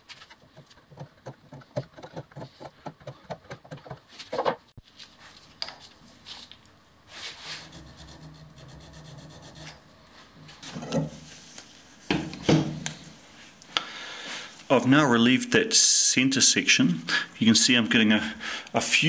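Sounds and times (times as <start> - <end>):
hand scraper rasping on metal: 7.3 - 9.9.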